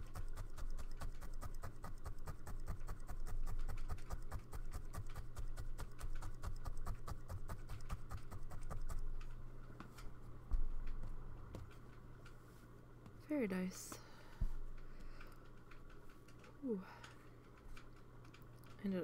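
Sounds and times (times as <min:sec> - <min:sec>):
felting needle poking wool: 0:00.0 - 0:09.9.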